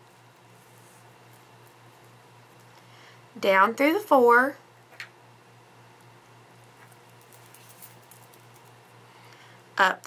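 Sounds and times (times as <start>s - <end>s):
low steady hum: 0.0s - 10.0s
thread rustling through beads: 6.7s - 8.9s.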